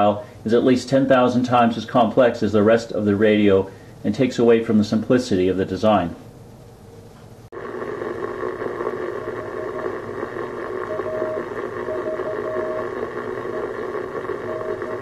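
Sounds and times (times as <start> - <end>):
radio band noise hiss: 7.6 - 15.0
morse code beat tone: 8.6 - 15.0.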